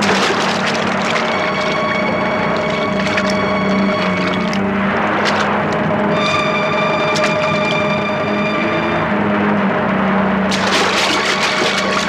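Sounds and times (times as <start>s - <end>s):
sustained drone of held tones: 0.7s - 12.0s
rushing swell of noise: 1.4s - 11.5s.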